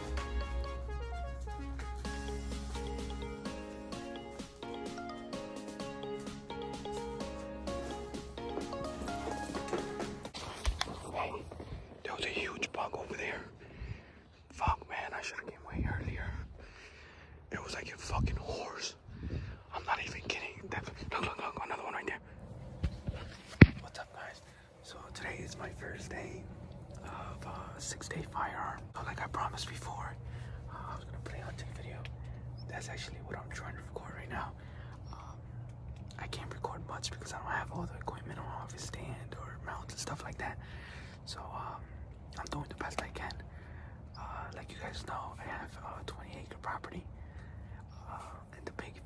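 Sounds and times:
man whispering: 0:10.8 - 0:16.6, 0:17.4 - 0:22.4, 0:23.8 - 0:49.0.

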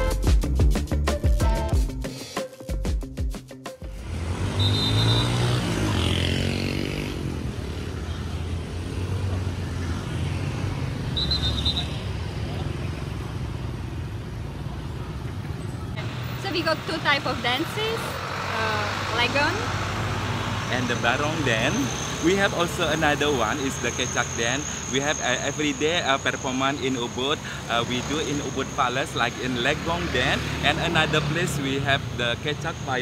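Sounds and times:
passing motor vehicles rumbling: 0:03.8 - 0:33.0
people's voices: 0:16.0 - 0:19.8.

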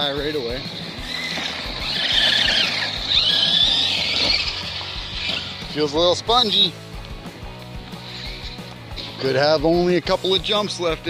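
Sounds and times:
electric motor whining: 0:00.0 - 0:06.9.

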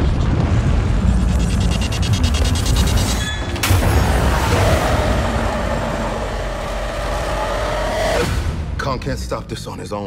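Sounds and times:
low rumble: 0:00.0 - 0:08.9.

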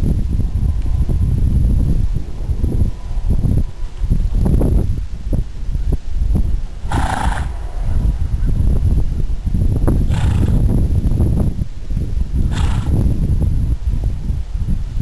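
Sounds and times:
steady low rumble: 0:00.0 - 0:15.0
horse neighing: 0:06.8 - 0:07.8.

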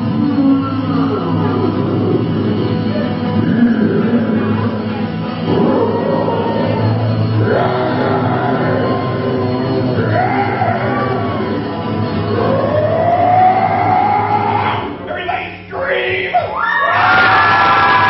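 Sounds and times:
acoustic band music: 0:00.0 - 0:16.6.

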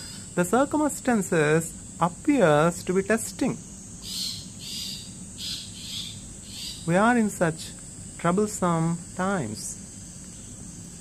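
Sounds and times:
high-pitched insect trill: 0:00.0 - 0:11.0.

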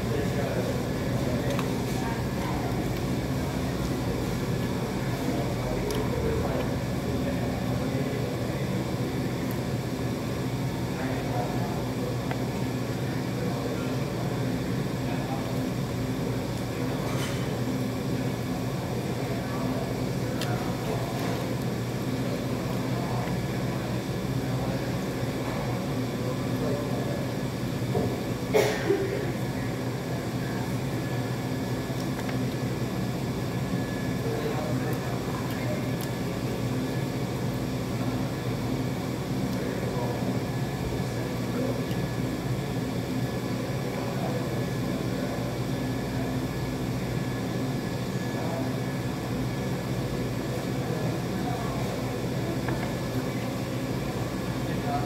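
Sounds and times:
ventilation hum: 0:00.0 - 0:55.0.

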